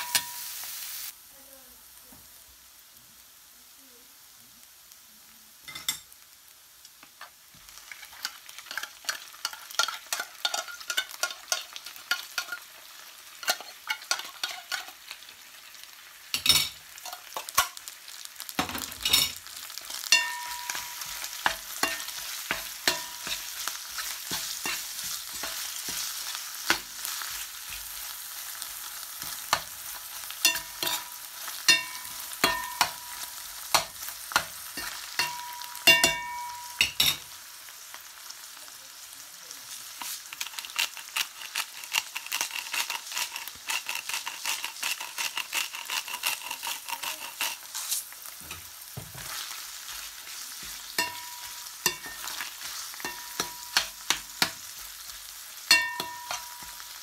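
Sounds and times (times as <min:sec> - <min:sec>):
food sizzling in a pan: 0:00.0 - 0:57.0
utensil scraping metal pan: 0:19.0 - 0:27.9, 0:40.5 - 0:54.7
steel pan ringing: 0:20.1 - 0:21.1, 0:31.7 - 0:33.2, 0:35.2 - 0:37.0, 0:55.7 - 0:56.8.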